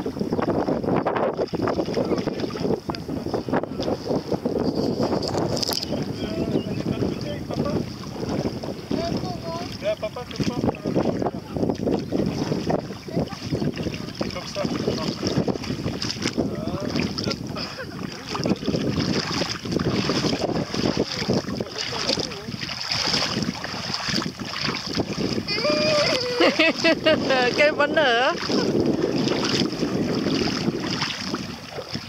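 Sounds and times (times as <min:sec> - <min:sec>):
feet wading through water: 0:00.0 - 0:32.0
wind rumbling on microphone: 0:00.0 - 0:32.0.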